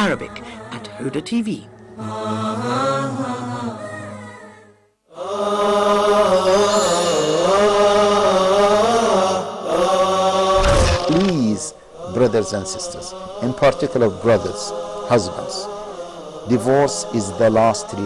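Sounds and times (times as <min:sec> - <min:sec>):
chanted vocal music: 0:00.0 - 0:18.0.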